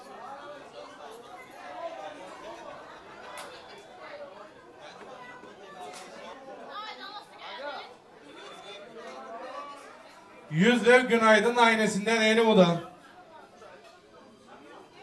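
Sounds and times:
people talking indistinctly: 0:10.5 - 0:13.0.

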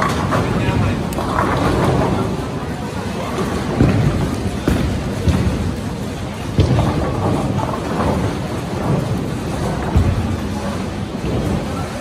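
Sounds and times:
bowling balls rumbling down lanes: 0:00.0 - 0:12.0
bowling pins crashing: 0:00.0 - 0:12.0.

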